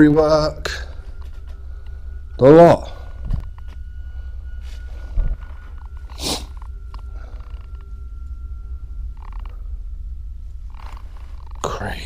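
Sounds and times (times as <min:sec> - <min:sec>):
faint steady high tone: 0:00.0 - 0:12.0.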